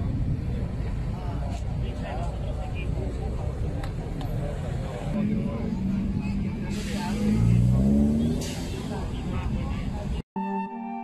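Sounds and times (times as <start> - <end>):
bus engine accelerating: 0.0 - 10.2
low traffic rumble: 0.0 - 10.2
people talking: 0.0 - 10.2.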